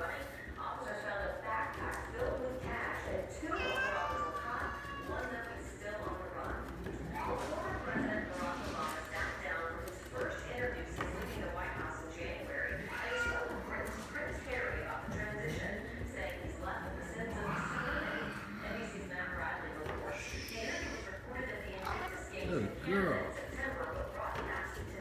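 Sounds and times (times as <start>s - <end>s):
cat exercise wheel turning: 0.0s - 25.0s.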